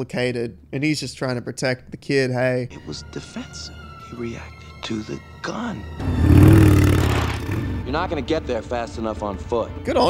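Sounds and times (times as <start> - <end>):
motorbike engine passing by: 6.0 - 8.0.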